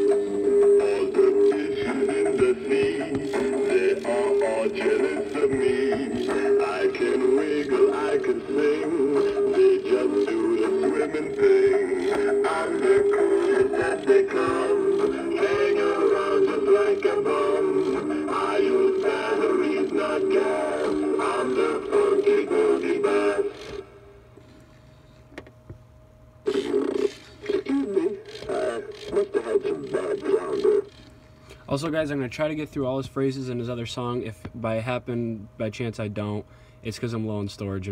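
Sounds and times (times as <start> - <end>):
toy fish speaker singing: 0.0 - 23.8, 26.5 - 31.0.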